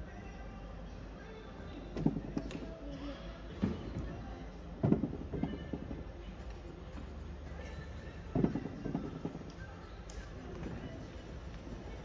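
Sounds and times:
faint background music: 0.0s - 12.0s
steady low hum: 0.0s - 12.0s
dull thuds: 4.8s - 6.0s, 8.3s - 9.5s.

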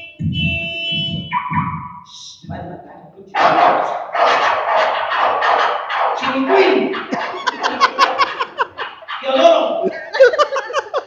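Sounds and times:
man speaking: 2.1s - 4.3s, 6.2s - 7.8s, 9.1s - 10.0s
audience laughing: 6.9s - 9.2s, 9.8s - 11.0s.

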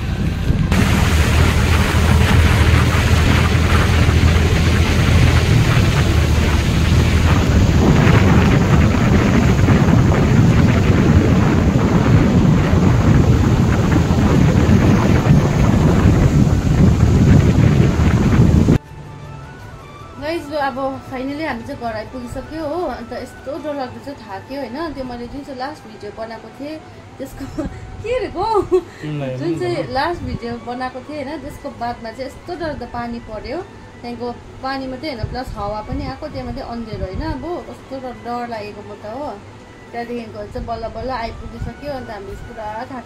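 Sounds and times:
motorbike engine: 0.0s - 18.8s
wind rumble on microphone: 0.0s - 18.8s, 27.2s - 43.0s.

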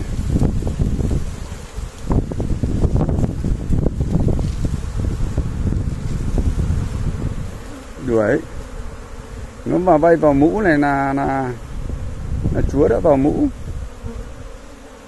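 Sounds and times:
low rustling and buffeting: 0.0s - 14.6s
bees buzzing: 0.0s - 15.0s.

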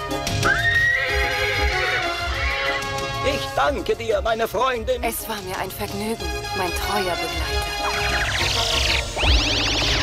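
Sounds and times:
film music: 0.0s - 10.0s
horse whinnying: 0.4s - 2.9s.

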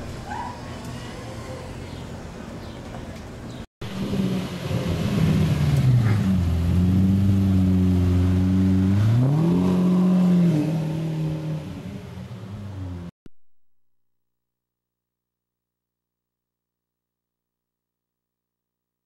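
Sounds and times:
car engine revving: 3.8s - 13.1s.

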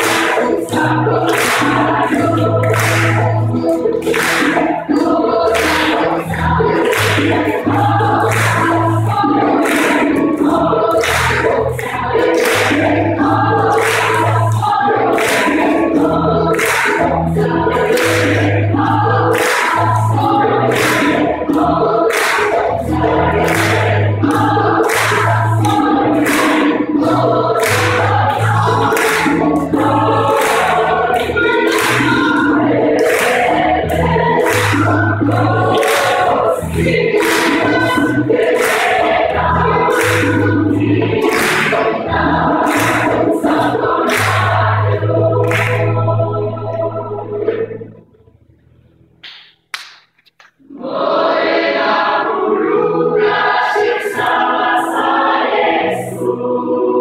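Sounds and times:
hand claps on the beat: 0.0s - 46.1s, 49.2s - 50.6s
gospel choir singing: 0.0s - 48.0s, 50.6s - 57.0s
low bass notes: 15.8s - 49.2s.

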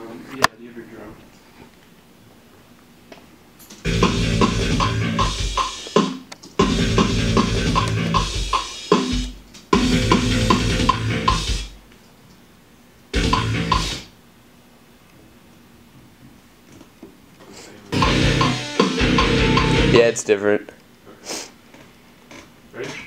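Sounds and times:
metal band playing: 3.9s - 11.7s, 13.2s - 14.1s, 18.0s - 20.2s.

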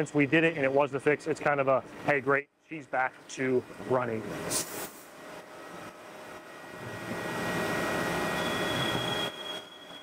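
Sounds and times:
high steady whine: 3.4s - 10.0s
rushing machine noise: 5.5s - 10.0s.

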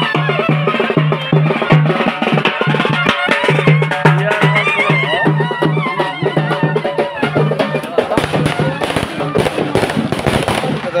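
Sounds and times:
traditional band with drums: 0.0s - 11.0s
rapid sharp cracks: 8.2s - 11.0s.

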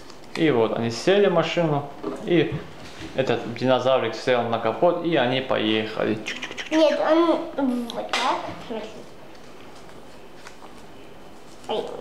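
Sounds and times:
paper cutouts rustling: 8.7s - 12.0s.

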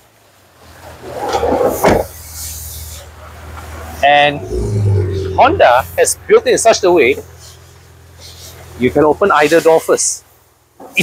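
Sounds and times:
faint hiss: 1.7s - 4.5s, 5.5s - 11.0s
sliding door rumble: 4.2s - 6.0s.

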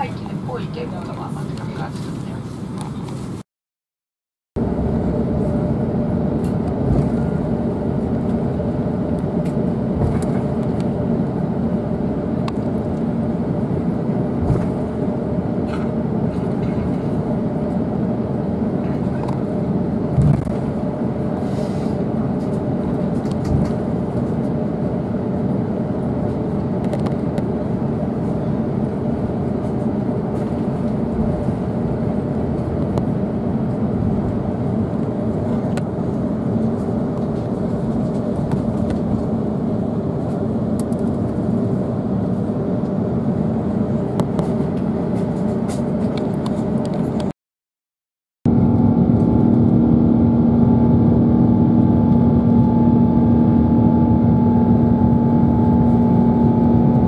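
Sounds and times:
aircraft engines rumbling: 0.0s - 3.4s, 4.6s - 47.3s, 48.5s - 57.0s.

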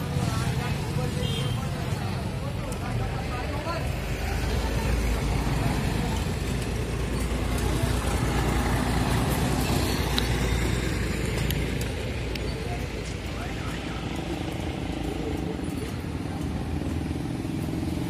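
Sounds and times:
motorcycles riding by: 0.0s - 18.0s.

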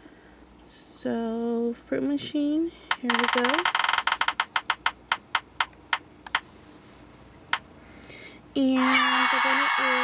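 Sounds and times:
slot machine reel clicks: 2.9s - 5.7s.

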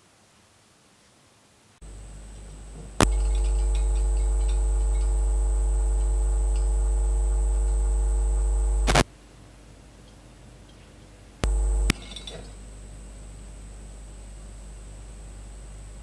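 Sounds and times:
electrical hum with high whine: 1.8s - 9.0s, 11.4s - 16.0s
switch click: 11.4s - 12.0s.

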